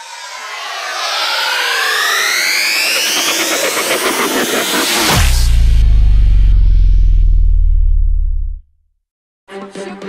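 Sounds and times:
rushing noise: 0.0 - 8.4
synthesized rising tones: 0.0 - 8.6.

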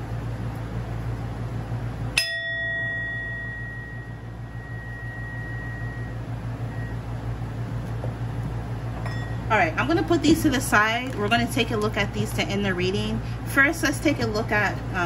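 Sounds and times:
metal singing bowl ringing: 2.2 - 7.0, 9.0 - 9.5.

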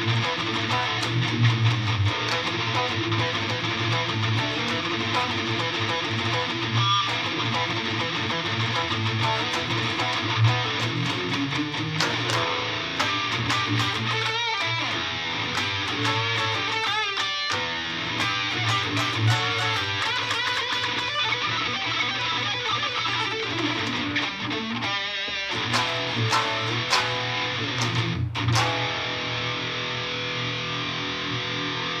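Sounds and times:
electric guitar through amp: 0.0 - 32.0.

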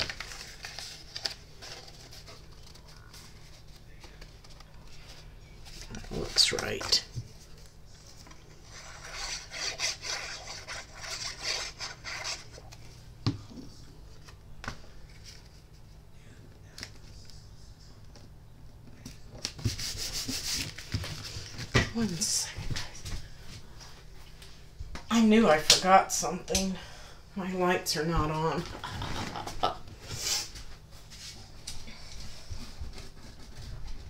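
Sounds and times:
hands rubbing paper: 5.8 - 12.8, 19.6 - 21.0.

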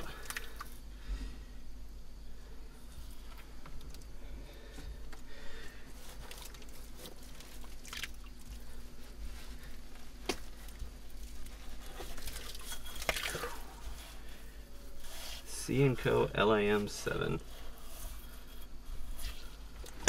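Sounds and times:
small clicks and crunches: 0.0 - 0.8, 3.2 - 4.1, 6.0 - 13.7.

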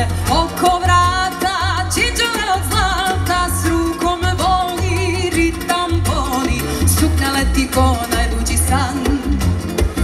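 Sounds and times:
live band music: 0.0 - 10.0.

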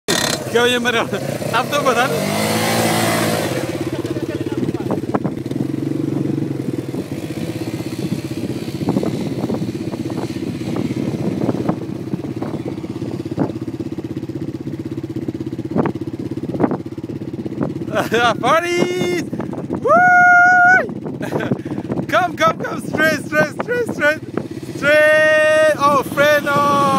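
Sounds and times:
quad bike engine revving: 0.1 - 26.9.

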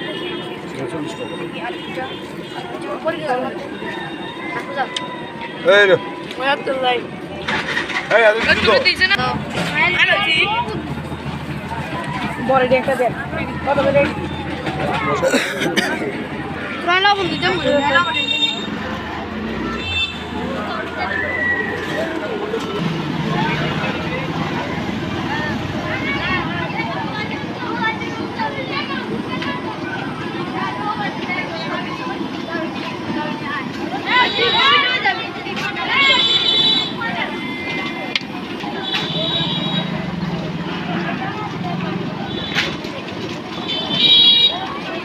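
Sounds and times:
vehicle horns honking: 0.0 - 2.8, 16.6 - 20.5, 34.1 - 35.1, 35.8 - 40.2, 43.6 - 44.7
people talking: 0.0 - 45.0
traffic rumble: 0.0 - 45.0.

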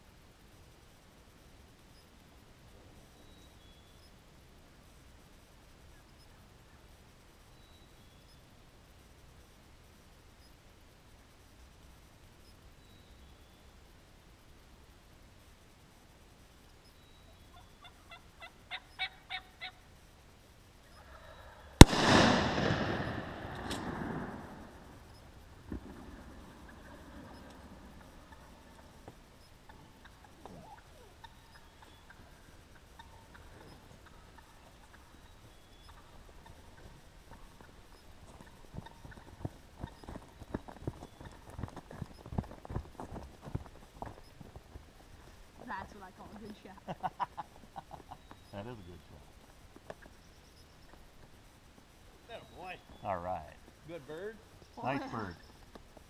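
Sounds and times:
turkey yelps: 17.5 - 19.8
shotgun blast: 21.8 - 24.9
turkey flopping on ground: 36.2 - 45.4
footsteps on corn stubble: 37.6 - 45.0.

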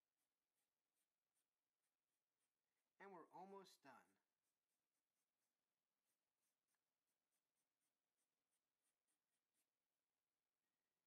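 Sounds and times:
felt-tip marker scratching on paper: 0.0 - 11.0.

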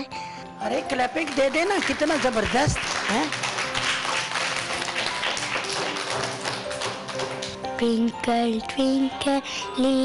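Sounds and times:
soft background music: 0.0 - 10.0
children clapping: 1.2 - 7.6.

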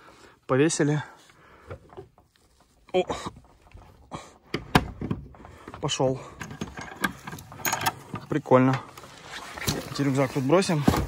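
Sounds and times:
padlock clicking and rattling: 6.3 - 8.4.

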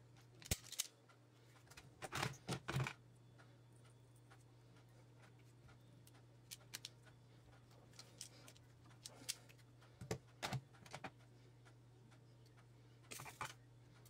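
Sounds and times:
steady low hum: 0.0 - 14.0
small clicks handling wire: 0.2 - 1.0.

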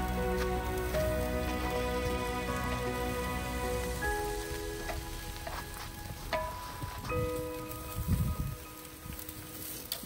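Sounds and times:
background music with held chords: 0.0 - 10.0
onions sizzling in a pan: 0.0 - 10.0.

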